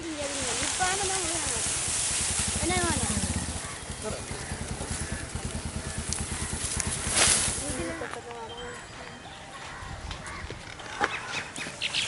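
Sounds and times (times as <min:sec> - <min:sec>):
steady hiss: 0:00.0 - 0:07.7
low rapid throbbing: 0:00.3 - 0:07.8.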